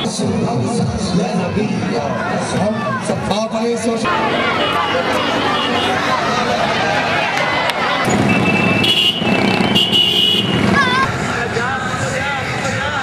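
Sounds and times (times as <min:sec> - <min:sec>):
crowd voices: 0:00.0 - 0:13.0
traffic: 0:00.0 - 0:13.0.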